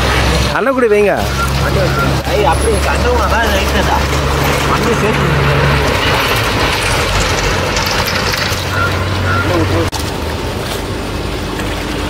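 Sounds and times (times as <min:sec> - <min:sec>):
splashing muddy water: 0:00.0 - 0:12.0
water pump engine running: 0:00.0 - 0:12.0.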